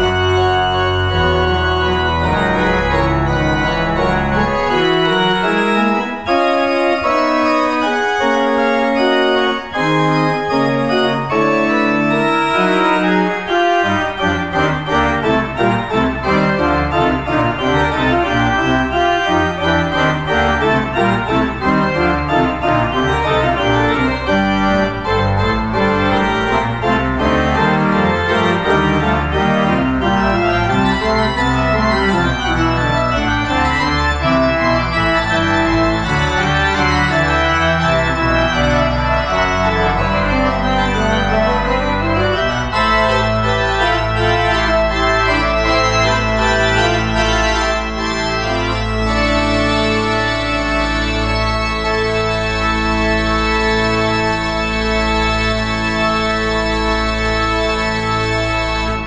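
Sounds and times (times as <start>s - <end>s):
church organ playing: 0.0s - 59.0s.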